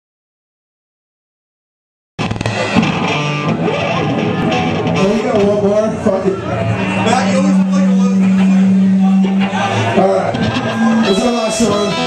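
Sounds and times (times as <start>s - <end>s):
electric guitar: 2.2s - 12.0s
live rock band playing: 2.2s - 12.0s.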